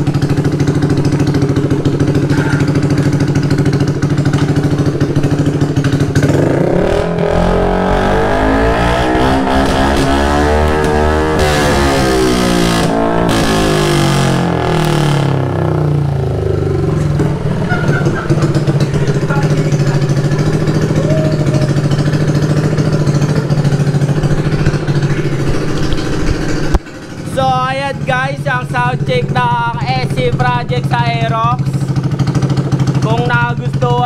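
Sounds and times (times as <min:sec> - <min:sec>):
scooter engine revving and idling: 0:00.0 - 0:34.0
man talking: 0:17.7 - 0:20.3, 0:27.3 - 0:31.9, 0:33.0 - 0:34.0.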